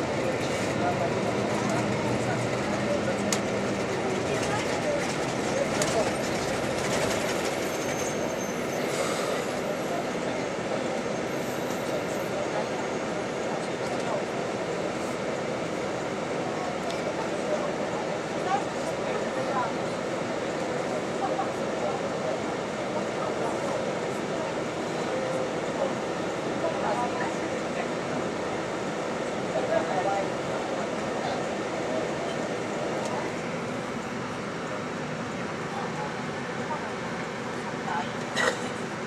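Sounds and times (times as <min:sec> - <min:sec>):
bus engine idling: 0:00.0 - 0:39.0
faint indistinct voices: 0:00.0 - 0:39.0.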